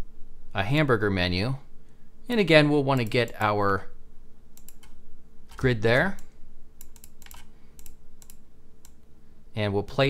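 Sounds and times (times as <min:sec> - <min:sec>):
mouse and keyboard clicking: 0:04.6 - 0:09.0.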